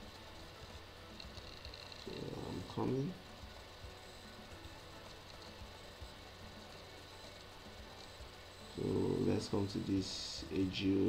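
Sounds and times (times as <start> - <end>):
thin electrical hum: 0.0 - 11.0.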